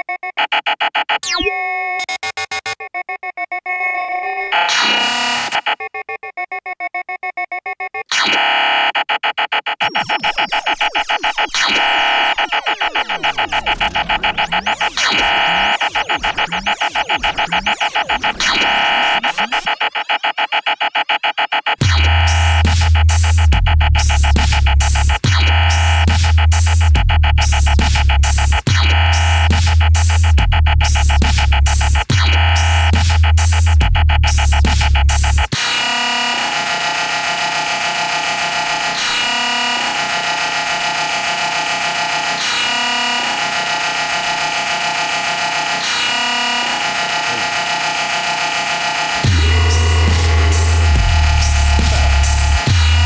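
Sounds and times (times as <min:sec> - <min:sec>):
fast repeating synth pattern: 0:00.0 - 0:03.4, 0:08.9 - 0:53.0
deep bass line: 0:21.9 - 0:35.5, 0:49.2 - 0:53.0
drum-like hits: 0:49.2 - 0:53.0.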